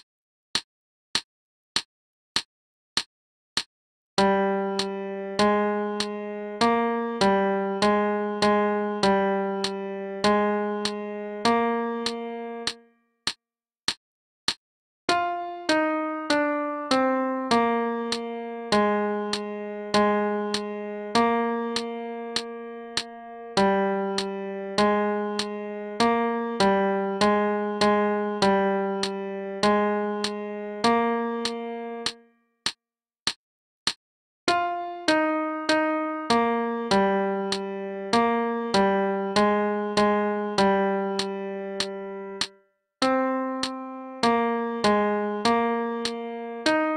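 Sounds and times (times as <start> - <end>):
metronome clicks: 4.2 - 12.8, 13.9 - 19.5, 20.5 - 20.7, 21.7 - 24.3, 25.3 - 25.6, 27.8 - 32.2, 34.5 - 46.9
piano-like keyboard melody: 4.2 - 13.0, 15.1 - 32.3, 34.5 - 46.9.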